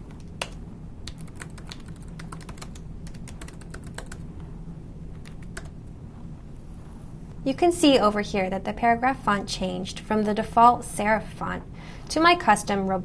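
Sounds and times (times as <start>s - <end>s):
low steady hum: 0.0s - 13.0s
typing on computer keyboard: 0.2s - 4.2s, 5.2s - 5.7s.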